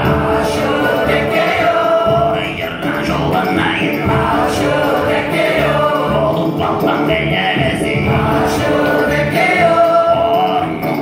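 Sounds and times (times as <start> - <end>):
voices singing together: 0.0 - 11.0.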